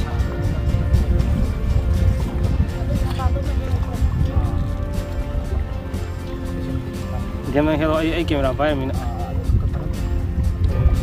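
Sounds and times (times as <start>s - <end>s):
faint background music: 0.0s - 11.0s
wind gusting on microphone: 0.0s - 11.0s.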